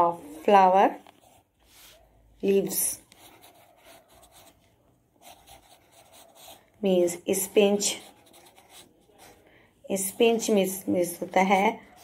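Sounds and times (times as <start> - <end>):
person speaking: 0.0 - 12.0
pen scratching while drawing: 3.0 - 4.6, 5.2 - 9.4.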